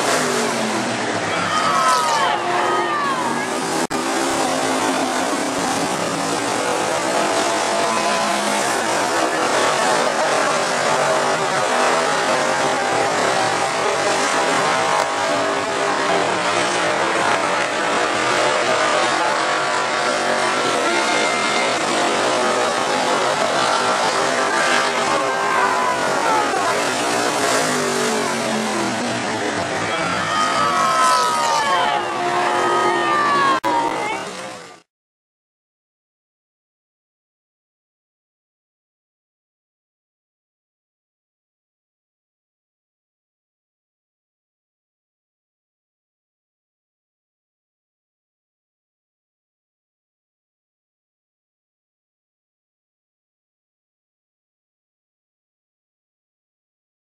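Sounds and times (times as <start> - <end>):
race car engines roaring: 0.0 - 34.9.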